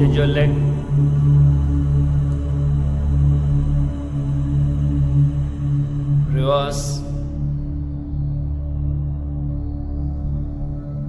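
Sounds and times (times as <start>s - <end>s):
rising chanted voice: 0.0s - 7.3s
low drone: 0.0s - 11.0s.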